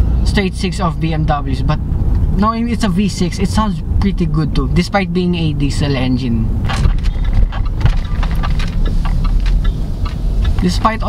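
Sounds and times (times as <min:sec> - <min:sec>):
diesel engine rumble in car cabin: 0:00.0 - 0:11.0
tyres on road: 0:00.0 - 0:11.0.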